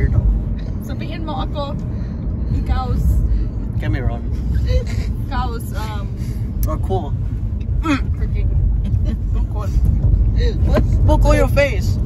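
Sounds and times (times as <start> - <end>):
car driving rumble inside cabin: 0.0 - 12.0
voices and laughter: 8.7 - 11.1.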